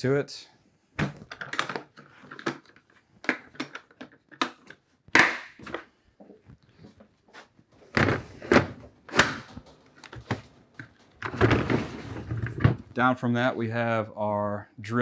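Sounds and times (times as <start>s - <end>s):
plastic cases set down knocking: 1.0s - 4.1s, 7.9s - 13.0s.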